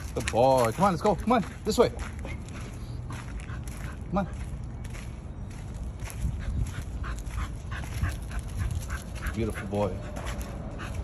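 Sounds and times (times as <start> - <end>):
steady low rumble: 2.0 - 9.3.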